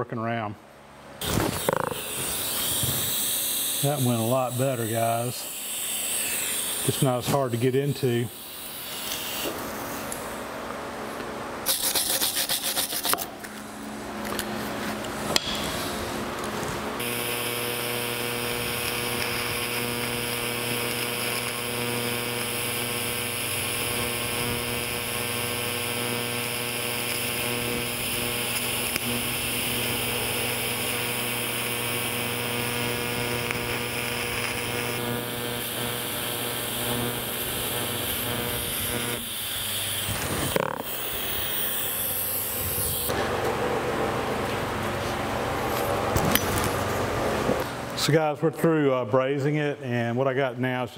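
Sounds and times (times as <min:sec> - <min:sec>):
welding torch arc buzzing: 0:01.2 - 0:10.6, 0:11.6 - 0:13.3, 0:15.1 - 0:43.4.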